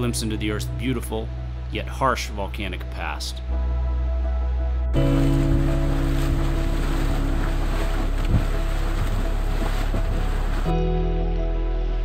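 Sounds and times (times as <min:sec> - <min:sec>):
background music with sustained tones: 0:00.0 - 0:12.0.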